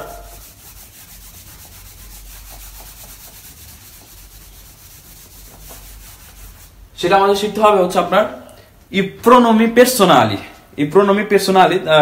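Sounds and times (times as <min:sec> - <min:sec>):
eraser rubbing on whiteboard: 0:00.0 - 0:06.8.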